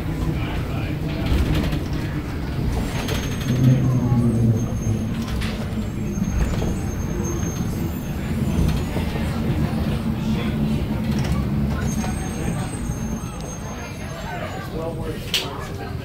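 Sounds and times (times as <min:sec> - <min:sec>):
monorail train rumble: 0:00.0 - 0:16.0.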